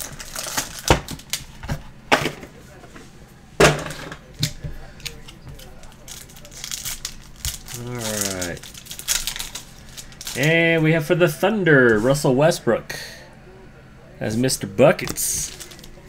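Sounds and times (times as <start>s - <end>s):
foil pack crinkling and tearing: 0.0s - 1.6s, 5.0s - 10.6s, 15.0s - 16.0s.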